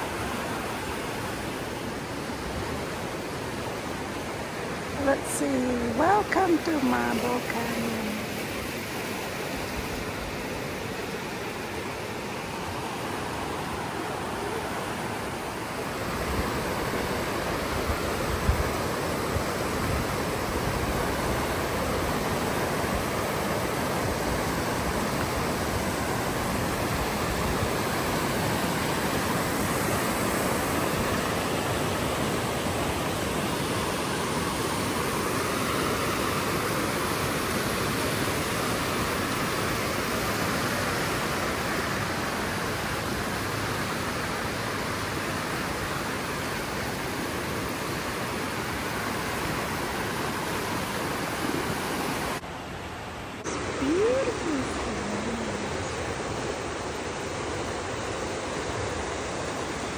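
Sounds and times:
creek water roaring over rocks: 0.0 - 59.9.

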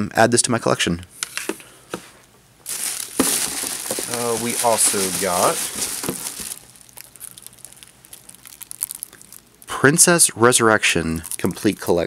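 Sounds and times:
tissue paper and plastic crinkling: 2.6 - 9.7, 11.1 - 12.0.

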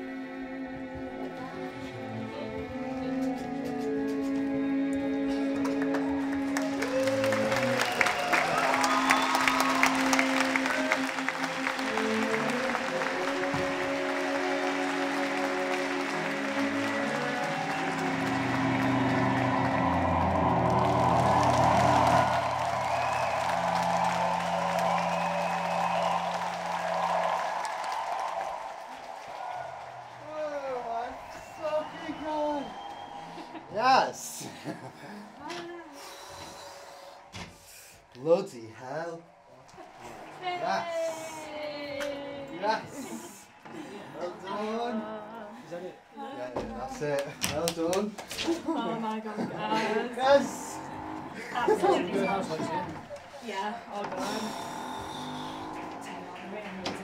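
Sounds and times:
live band with strings: 1.0 - 6.6
audience applause: 5.3 - 57.0.

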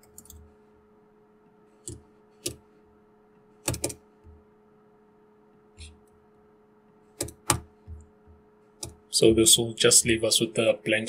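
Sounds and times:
keyboard keystrokes: 3.6 - 4.4, 7.2 - 8.0.

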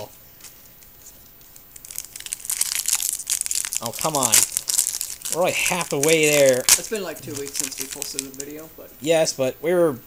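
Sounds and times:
foil wrapper crinkling and tearing: 1.5 - 8.6.

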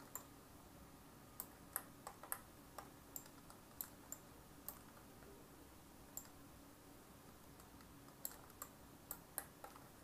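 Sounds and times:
faint computer control clicks: 1.4 - 5.3, 6.1 - 6.4.

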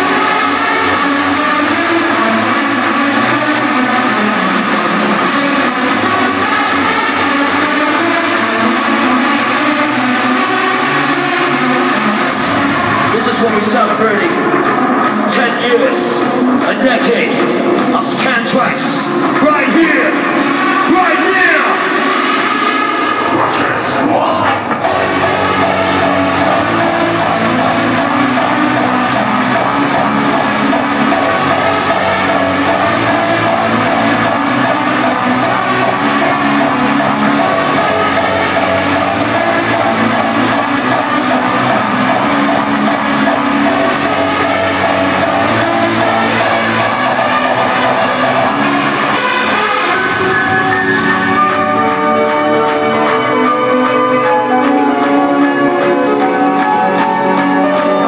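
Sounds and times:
hardstyle dance music: 0.0 - 58.0
held synth chords: 0.0 - 58.0
sweeping synth tones: 0.0 - 58.0.

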